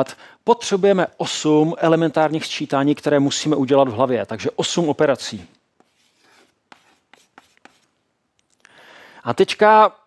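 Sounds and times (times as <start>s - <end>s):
chalk scratching on blackboard: 5.8s - 8.0s.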